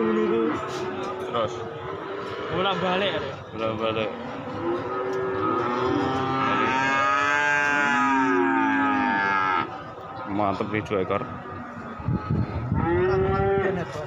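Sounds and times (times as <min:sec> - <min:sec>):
cattle mooing: 0:04.2 - 0:09.7, 0:12.7 - 0:13.8.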